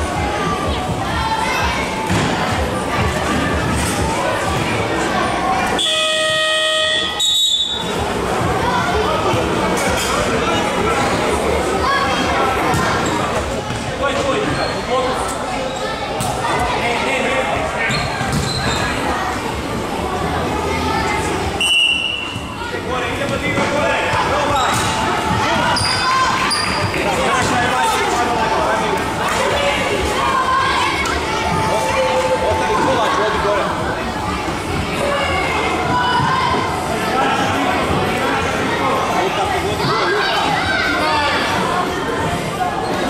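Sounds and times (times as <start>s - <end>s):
crowd chatter: 0.0s - 43.0s
people talking and shouting: 0.0s - 43.0s
buzzer steady tone: 5.8s - 7.2s
referee's whistle blast: 5.8s - 7.8s.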